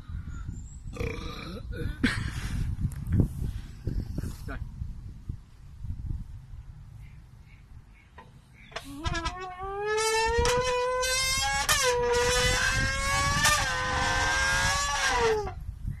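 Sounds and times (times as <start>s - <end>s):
man buzzing through tin can: 8.8s - 15.6s.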